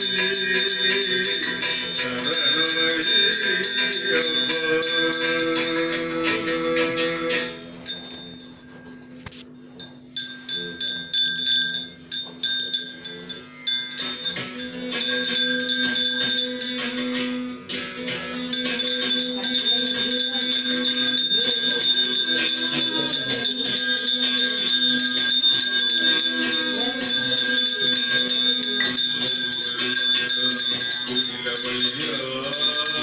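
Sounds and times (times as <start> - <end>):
jingling percussion: 0.0 - 33.0
metal bell ringing: 0.0 - 33.0.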